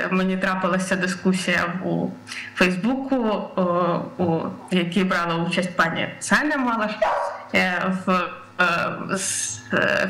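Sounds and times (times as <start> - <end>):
woman talking over video call: 0.0 - 10.0.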